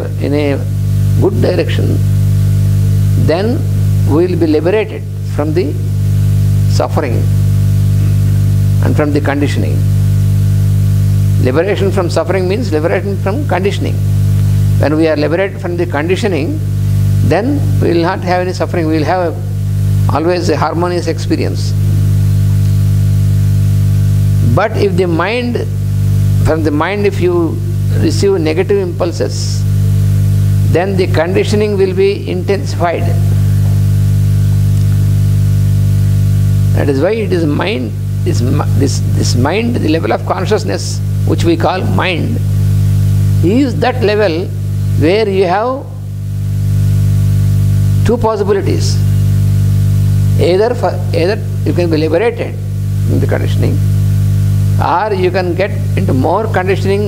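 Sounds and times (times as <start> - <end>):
electrical mains hum: 0.0 - 57.0.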